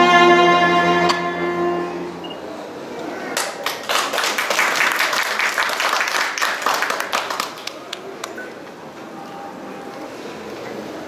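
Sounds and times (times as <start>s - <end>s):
audience applauding: 3.4s - 8.4s.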